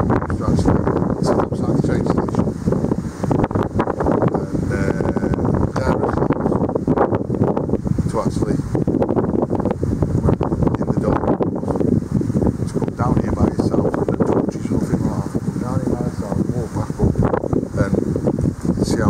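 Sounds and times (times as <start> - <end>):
wind buffeting microphone: 0.0 - 19.0
man's voice: 0.2 - 2.5, 4.3 - 6.5, 8.1 - 8.7, 10.6 - 11.6, 12.7 - 18.1, 18.8 - 19.0.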